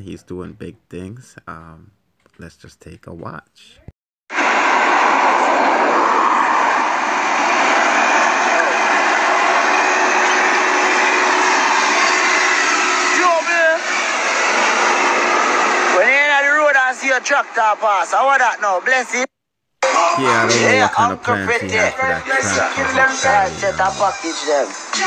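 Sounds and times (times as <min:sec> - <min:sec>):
man talking: 0:00.0 - 0:03.9, 0:20.1 - 0:24.2
diesel engine roaring: 0:07.0 - 0:16.2
man shouting: 0:19.8 - 0:24.2.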